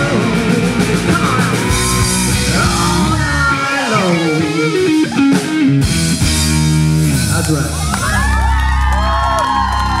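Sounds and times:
rock band holding a chord: 0.0 - 8.3
crowd cheering and whooping: 1.1 - 3.2, 7.7 - 10.0.

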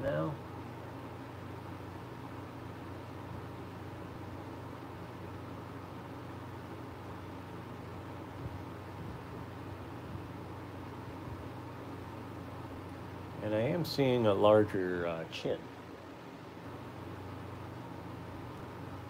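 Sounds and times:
electric fan running: 0.0 - 19.0.

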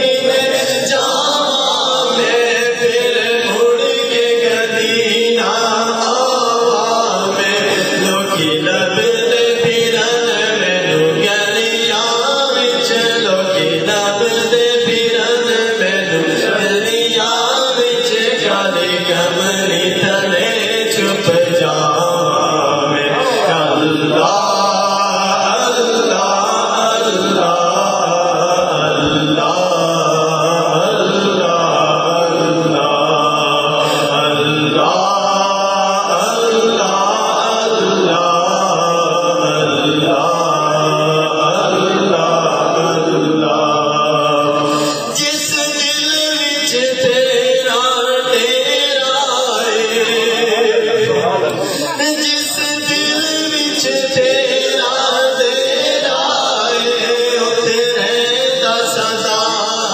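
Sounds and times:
man singing devotional chant: 0.0 - 59.9.

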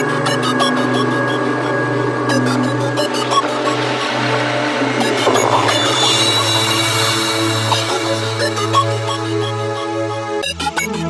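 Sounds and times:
electronic synth textures: 0.0 - 10.4
heavy bass tone: 1.0 - 9.8.

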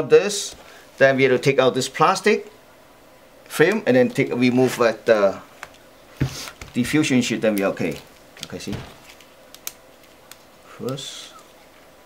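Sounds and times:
sharp clicks of handled parts: 7.5 - 11.1.

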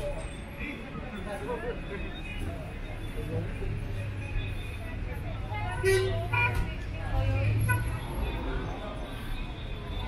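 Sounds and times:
passers-by talking: 0.0 - 10.0
vehicle engines humming: 0.0 - 10.0.

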